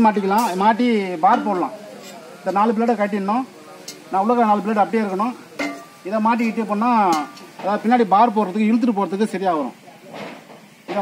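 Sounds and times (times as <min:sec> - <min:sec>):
man talking: 0:00.0 - 0:09.8.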